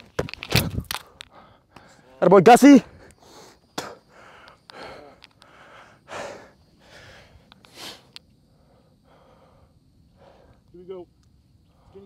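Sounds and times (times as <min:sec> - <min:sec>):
person breathing hard: 0:01.0 - 0:02.2, 0:02.9 - 0:10.7
faint clicks: 0:03.8 - 0:05.6, 0:07.4 - 0:08.4, 0:10.4 - 0:11.4.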